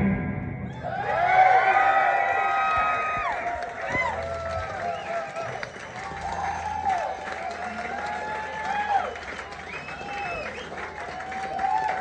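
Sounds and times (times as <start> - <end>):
audience voices and whoops: 0.6 - 12.0.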